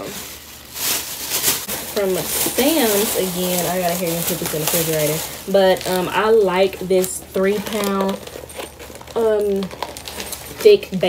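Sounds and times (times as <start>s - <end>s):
plastic bag rustling: 0.0s - 11.0s.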